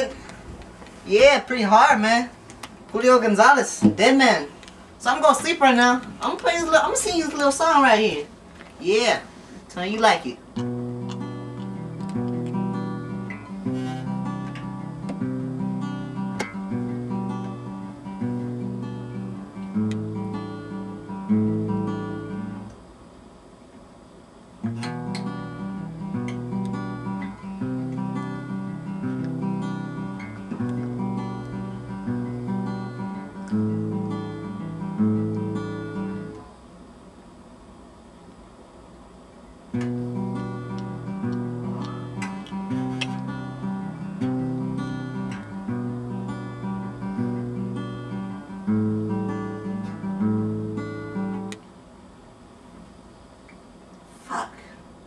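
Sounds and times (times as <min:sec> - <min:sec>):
acoustic guitar chords: 0:00.0 - 0:23.1, 0:24.6 - 0:36.6, 0:39.7 - 0:51.7.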